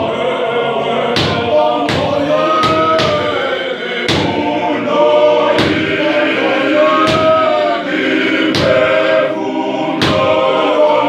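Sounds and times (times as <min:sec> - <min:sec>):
men's choir singing a hymn: 0:00.0 - 0:11.0
sharp clap: 0:10.0 - 0:10.4.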